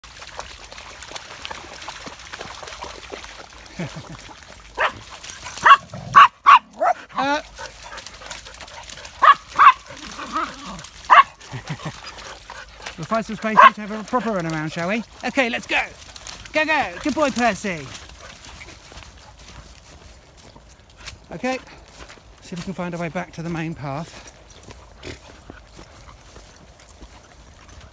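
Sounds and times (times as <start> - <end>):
water trickling: 0.0 - 19.0
dogs splashing in water: 0.0 - 27.9
footsteps through wet grass: 0.0 - 27.9
person laughing: 3.7 - 4.3, 11.4 - 12.0.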